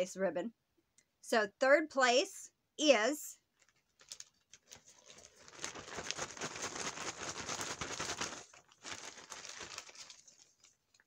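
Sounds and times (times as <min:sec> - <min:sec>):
plastic bag crinkling: 0:03.5 - 0:11.0.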